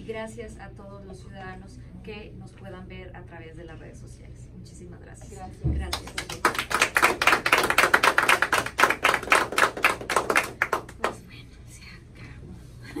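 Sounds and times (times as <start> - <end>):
people applauding: 5.9 - 11.2.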